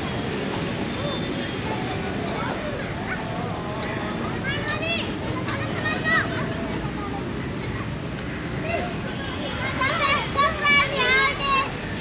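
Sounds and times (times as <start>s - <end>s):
children calling out and squealing: 4.3s - 7.3s, 8.5s - 12.0s.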